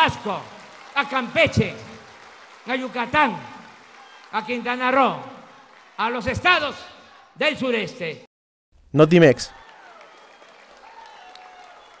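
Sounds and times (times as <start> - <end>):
crowd applauding: 0.0 - 7.2, 9.6 - 12.0.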